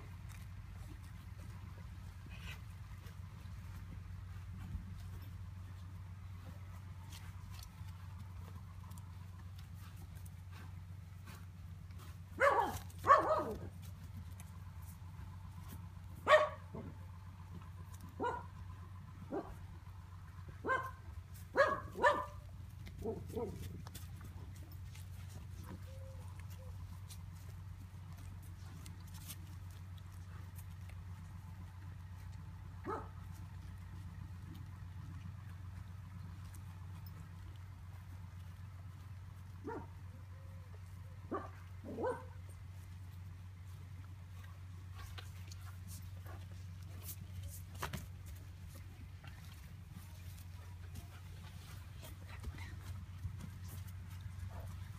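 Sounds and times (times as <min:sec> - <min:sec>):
dog barking: 0:12.4 - 0:13.7, 0:16.2 - 0:16.9, 0:18.2 - 0:18.6, 0:19.3 - 0:19.6, 0:20.6 - 0:22.4, 0:32.8 - 0:33.2, 0:39.6 - 0:40.0, 0:41.3 - 0:42.4.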